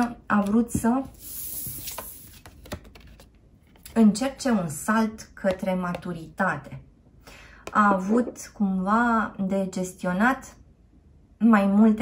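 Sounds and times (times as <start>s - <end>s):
cards tapping on table: 1.6s - 3.1s.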